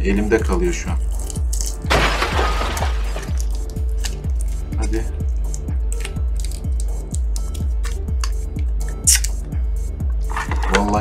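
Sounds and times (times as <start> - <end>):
sticky tape peeling crackles: 1.1 - 1.9, 5.4 - 8.4
music with bass-drum beat: 3.3 - 11.0.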